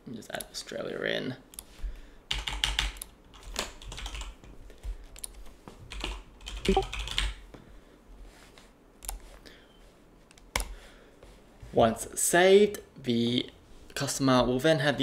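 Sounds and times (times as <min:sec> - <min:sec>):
keyboard typing: 0:02.3 - 0:04.5, 0:05.2 - 0:07.4.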